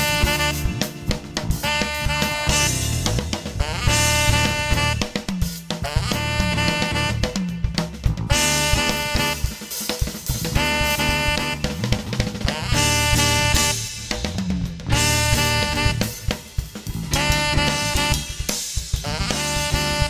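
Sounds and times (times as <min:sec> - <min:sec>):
saxophone melody: 0:00.0 - 0:14.2, 0:14.9 - 0:20.0
drum kit: 0:00.0 - 0:20.0
electric bass: 0:00.0 - 0:20.0
keyboards: 0:00.0 - 0:20.0.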